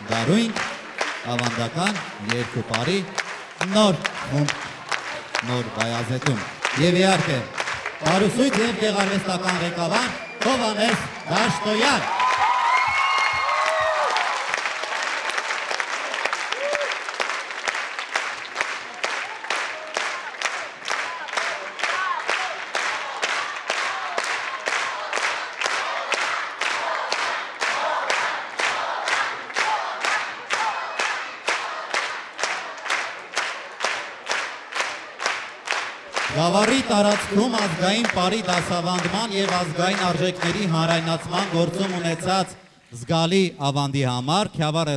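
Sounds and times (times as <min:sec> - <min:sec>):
audience applauding: 0:00.0 - 0:42.5
rhythmic clapping in unison: 0:00.0 - 0:43.1.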